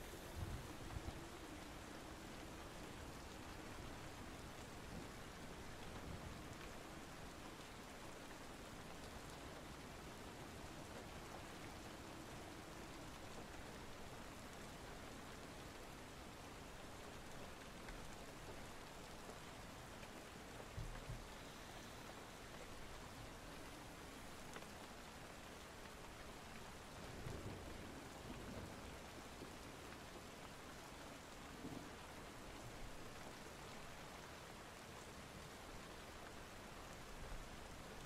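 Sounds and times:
steady rain falling: 0:00.0 - 0:38.0.

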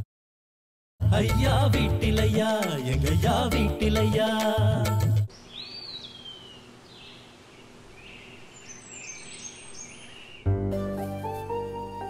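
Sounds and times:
sung theme song: 0:01.0 - 0:05.3
birds chirping: 0:05.3 - 0:10.6
outdoor ambience hiss: 0:05.3 - 0:12.0
soft background music: 0:10.5 - 0:12.0.

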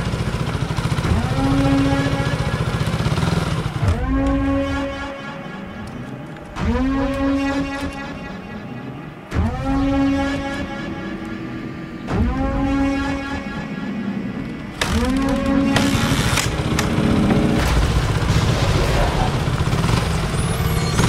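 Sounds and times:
motorbike engine revving: 0:00.0 - 0:08.2, 0:14.5 - 0:21.0.

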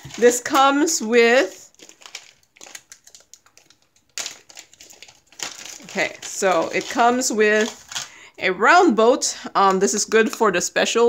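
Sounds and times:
plastic bag crinkling: 0:00.0 - 0:08.3
plastic trays handled: 0:01.8 - 0:08.1.

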